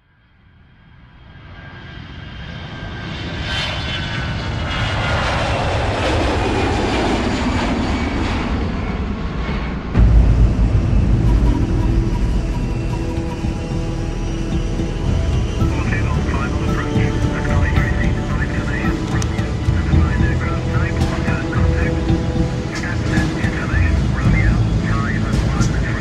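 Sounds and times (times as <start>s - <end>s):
jet airliner engine rush: 0.3s - 26.0s
deep engine rumble: 2.7s - 26.0s
faint sweeping tones: 10.0s - 26.0s.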